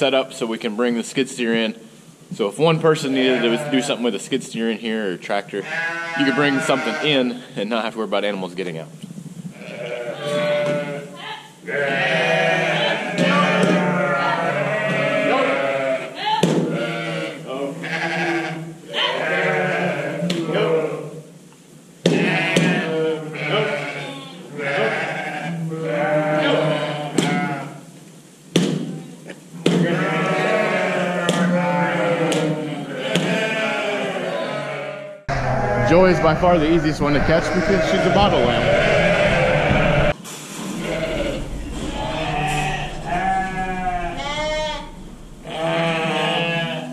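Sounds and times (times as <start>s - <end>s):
sheep and lambs bleating: 3.0s - 4.0s, 5.6s - 7.5s, 9.5s - 21.2s, 22.2s - 27.8s, 29.8s - 40.2s, 40.8s - 46.9s.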